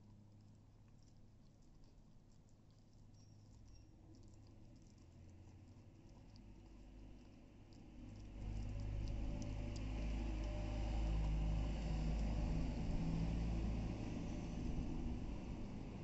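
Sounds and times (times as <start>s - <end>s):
low steady rumble: 0.0s - 16.0s
puppy gnawing a bone: 0.0s - 16.0s.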